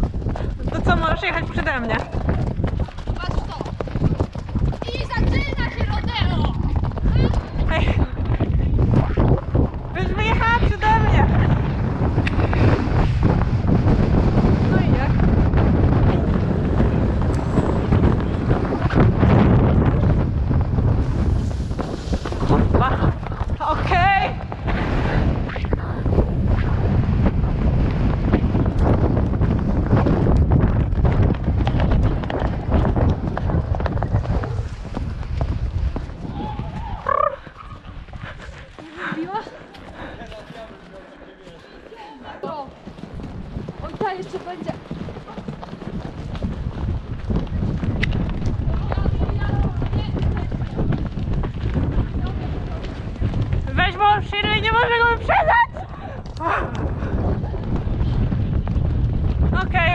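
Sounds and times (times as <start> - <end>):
wind rush on microphone: 0.0 - 41.0, 41.7 - 59.9
horse hoofbeats on dirt: 0.0 - 59.9.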